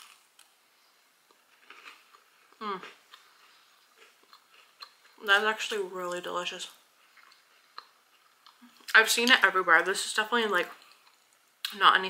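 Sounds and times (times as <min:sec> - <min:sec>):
chewing a soft cookie: 0:00.0 - 0:05.2, 0:06.8 - 0:09.0.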